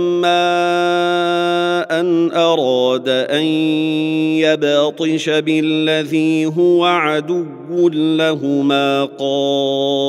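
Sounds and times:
man chanting melodically: 0:00.0 - 0:10.0.

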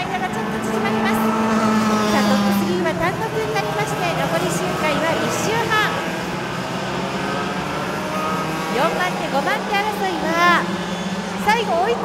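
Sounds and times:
racing kart engines revving: 0:00.0 - 0:12.0.

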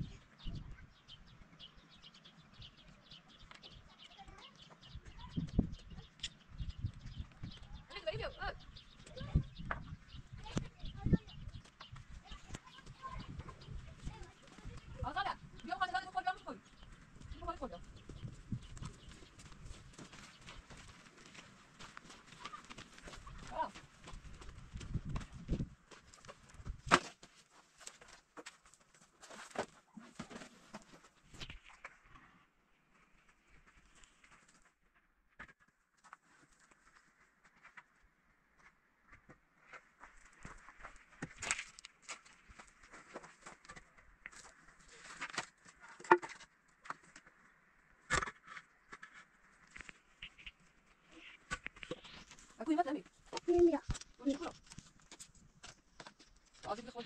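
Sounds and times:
knocks and footsteps: 0:06.9 - 0:31.9, 0:35.4 - 0:47.4.

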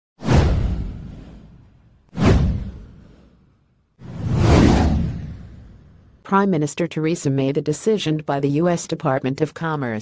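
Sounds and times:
whoosh with deep rumble: 0:00.2 - 0:06.2.

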